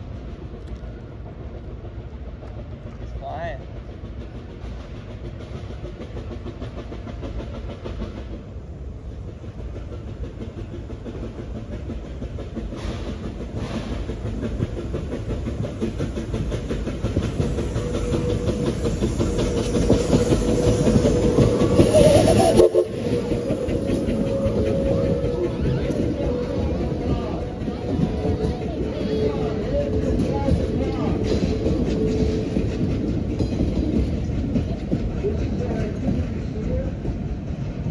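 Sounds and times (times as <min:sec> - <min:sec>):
steam locomotive passing: 0:00.0 - 0:37.9
wheels on rails: 0:00.0 - 0:37.9.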